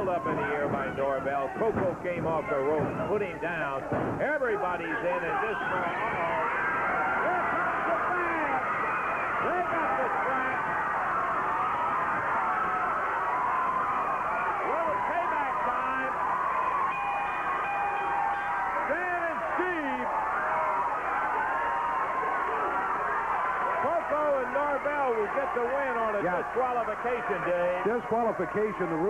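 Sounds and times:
crowd yelling and screaming: 0.0s - 29.0s.

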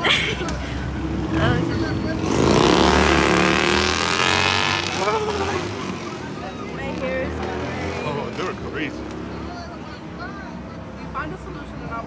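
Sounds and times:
voices: 4.4s - 12.0s.

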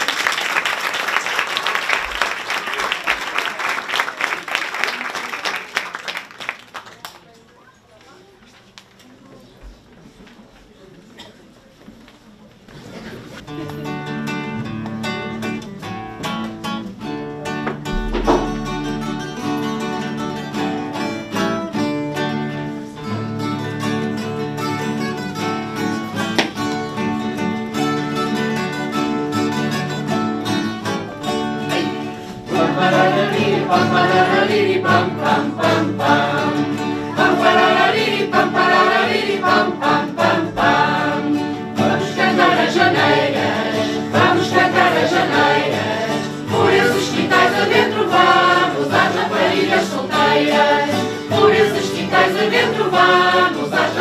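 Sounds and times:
acoustic guitars strumming: 13.5s - 54.0s
choir of women and children singing: 31.7s - 54.0s.

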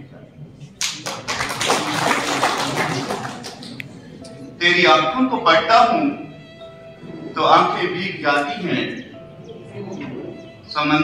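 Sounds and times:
audience applauding: 0.8s - 4.0s.

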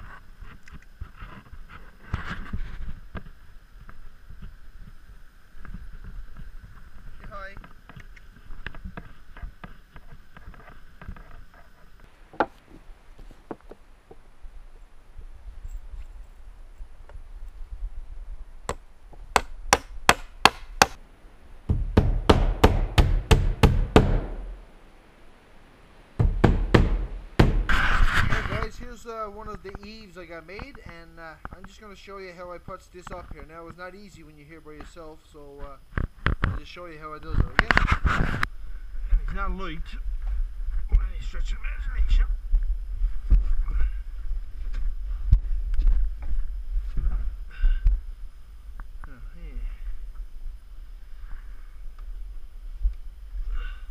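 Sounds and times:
wind rumbling on microphone: 0.0s - 20.1s, 35.8s - 53.9s
hammer driving nails into wood: 21.7s - 24.5s, 26.2s - 27.8s
wooden knocks and bumps: 26.2s - 27.7s.

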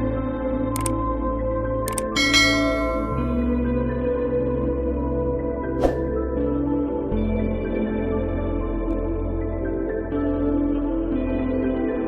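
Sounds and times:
ambient background music: 0.0s - 12.0s
bright bell chime: 2.2s - 3.4s.

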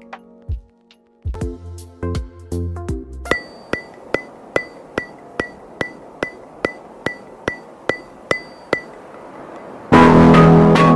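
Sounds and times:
ringing metallic ticks: 3.3s - 9.8s.

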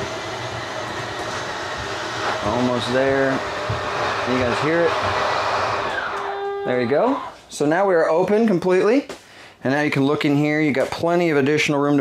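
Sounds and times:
slide motors whirring: 3.1s - 6.6s.

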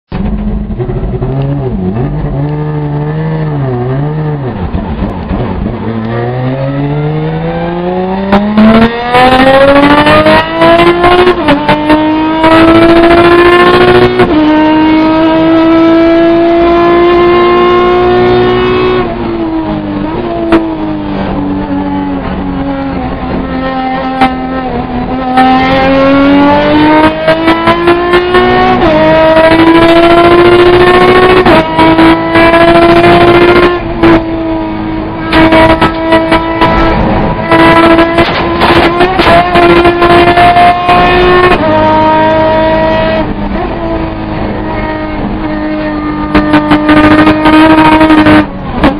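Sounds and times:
race car engine accelerating: 0.1s - 48.9s.

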